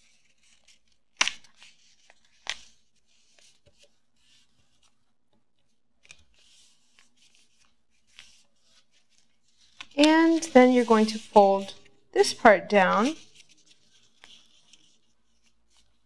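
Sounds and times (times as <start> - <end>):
paper rustling and crinkling: 0.0 - 11.9, 12.8 - 16.0
paper crackling: 6.0 - 11.9, 12.7 - 16.0.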